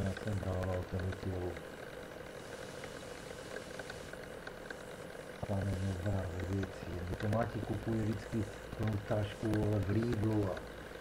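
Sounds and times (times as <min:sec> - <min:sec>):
microphone hiss and hum: 0:00.0 - 0:11.0.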